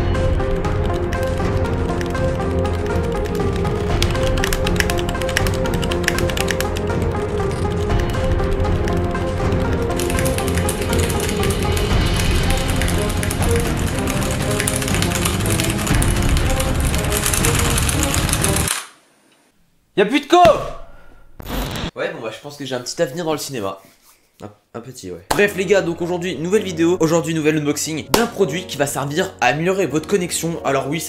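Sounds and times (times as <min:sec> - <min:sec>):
fast typing on keyboard: 0:00.2 - 0:18.8.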